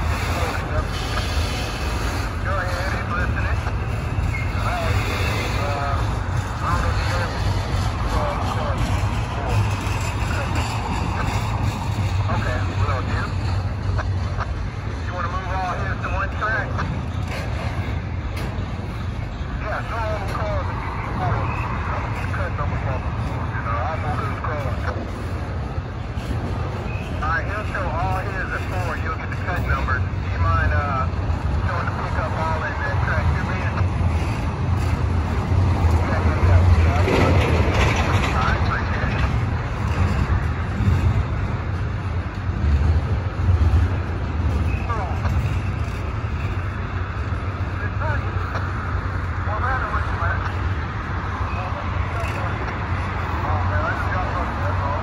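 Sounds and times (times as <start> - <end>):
train rumbling on rails: 0.0 - 55.0.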